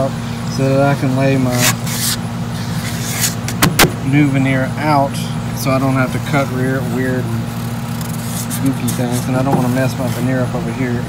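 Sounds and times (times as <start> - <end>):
low mechanical hum: 0.0 - 11.0
sharp knocks: 3.5 - 4.0.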